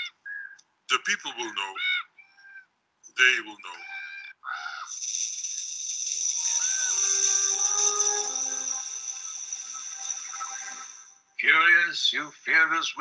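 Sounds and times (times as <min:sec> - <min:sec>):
airy high hiss: 0:04.9 - 0:11.2
soft sustained music tones: 0:04.9 - 0:11.4.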